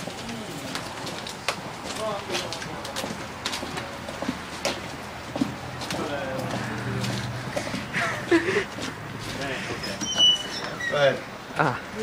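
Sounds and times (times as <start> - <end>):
footsteps on concrete: 0.0 - 10.8
low voices: 5.8 - 12.0.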